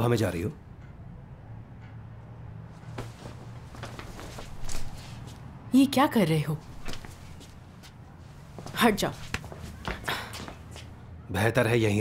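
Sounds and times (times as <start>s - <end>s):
footsteps on hard floor: 2.9s - 5.4s.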